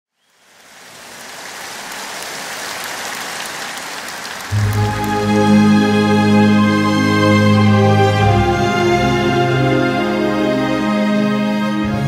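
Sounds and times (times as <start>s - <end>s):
audience applauding: 0.3s - 6.6s.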